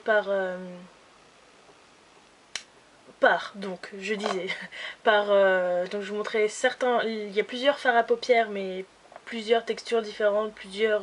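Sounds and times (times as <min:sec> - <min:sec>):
finger snap: 0:02.5 - 0:02.7.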